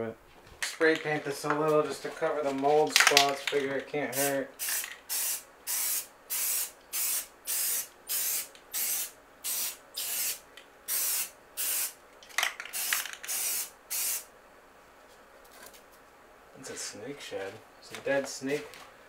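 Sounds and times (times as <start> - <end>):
spray paint can bursts: 4.1 - 12.0, 12.7 - 14.3.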